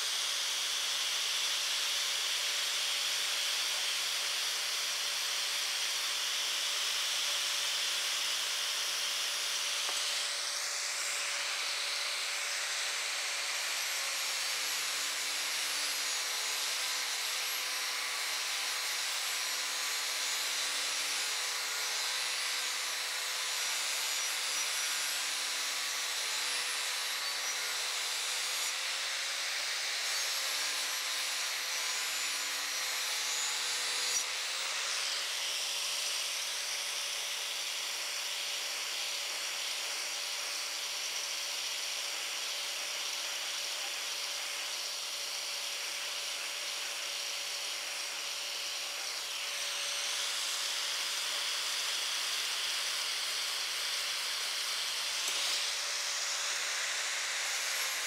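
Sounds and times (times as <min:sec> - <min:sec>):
grinder grinding steel blade: 0:00.0 - 0:58.0.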